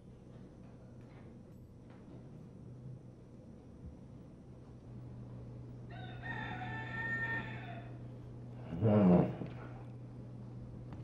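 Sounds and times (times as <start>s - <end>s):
steady low hum: 0.0s - 11.0s
rooster crowing: 5.9s - 8.0s.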